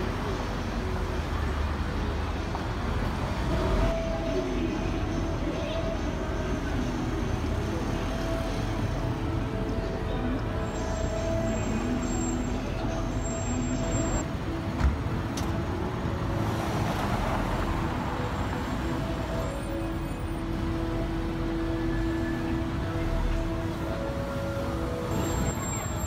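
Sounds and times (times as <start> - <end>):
cars passing: 0.0 - 26.0.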